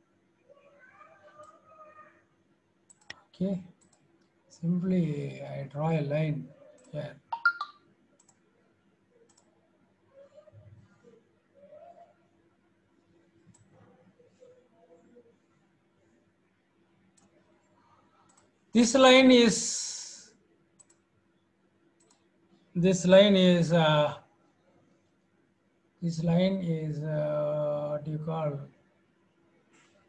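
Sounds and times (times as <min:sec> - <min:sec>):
computer mouse clicks: 0:02.9 - 0:04.3, 0:06.8 - 0:08.4, 0:09.3 - 0:09.5, 0:13.4 - 0:13.8, 0:18.2 - 0:18.5, 0:20.8 - 0:21.0, 0:22.0 - 0:22.3
faint computer mouse clicks: 0:02.9 - 0:04.3, 0:09.3 - 0:09.5, 0:20.8 - 0:21.0, 0:22.0 - 0:22.3
man's voice: 0:18.8 - 0:20.2, 0:22.8 - 0:24.2.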